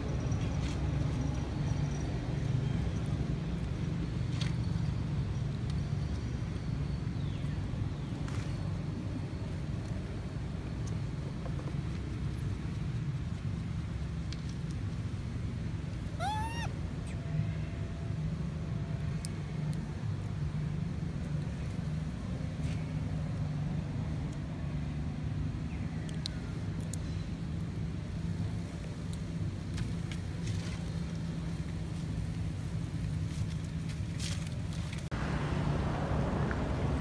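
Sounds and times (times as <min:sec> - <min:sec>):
fainter falling monkey call: 0:16.2 - 0:16.8
monkey squealing call: 0:16.2 - 0:16.8
steady low rumble: 0:31.0 - 0:37.0.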